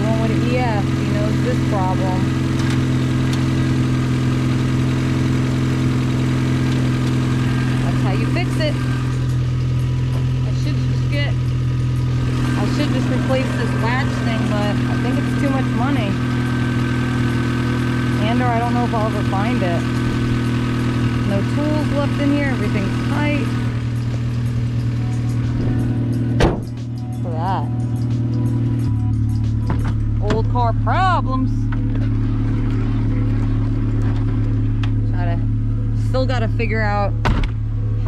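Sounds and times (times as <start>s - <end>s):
car engine idling: 0.0s - 38.0s.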